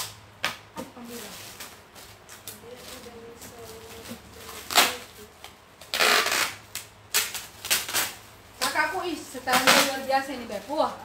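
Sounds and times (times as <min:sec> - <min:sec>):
woman speaking: 0:00.8 - 0:01.4, 0:02.5 - 0:05.4, 0:08.6 - 0:11.0.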